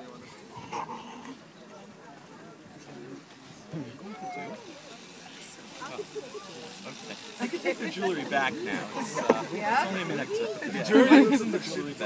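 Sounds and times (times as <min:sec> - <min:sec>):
murmur of people talking: 0:00.0 - 0:12.0.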